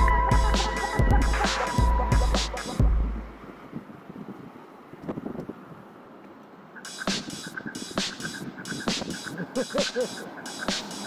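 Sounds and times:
faint road noise: 0.0 - 11.0
wind rushing over microphone: 2.9 - 6.2.

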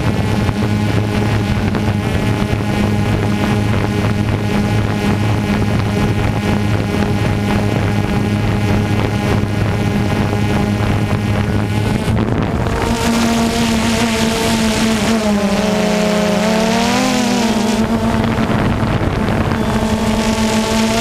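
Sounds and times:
propeller aircraft engine drone: 0.0 - 21.0
wind rush: 0.0 - 21.0.

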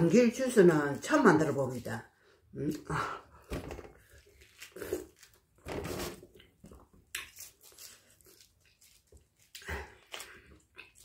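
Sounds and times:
orange rind tearing and rustling: 3.8 - 11.0.

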